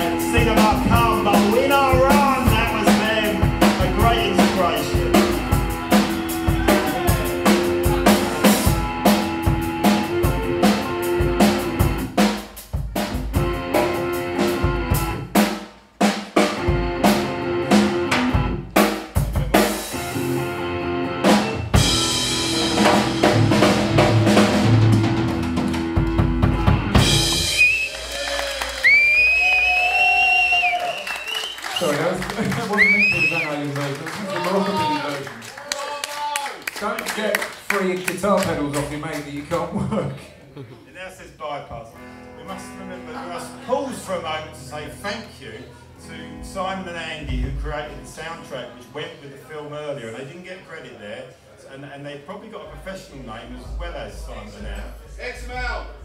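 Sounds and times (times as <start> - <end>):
guitarist talking: 0.0 - 5.6, 41.0 - 51.4
drums hitting hard and fast: 0.0 - 20.4, 21.2 - 30.7, 47.2 - 48.2, 52.7 - 56.0
rock band playing: 0.0 - 35.3, 37.0 - 40.0, 41.7 - 49.2.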